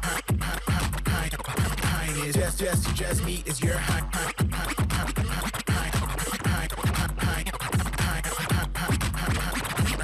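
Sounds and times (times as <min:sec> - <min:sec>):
hip hop beat: 0:00.0 - 0:10.0
record scratching: 0:00.0 - 0:10.0.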